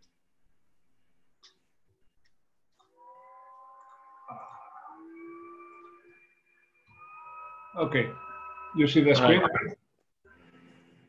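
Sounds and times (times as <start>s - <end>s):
faint whistling tones: 3.2s - 9.3s.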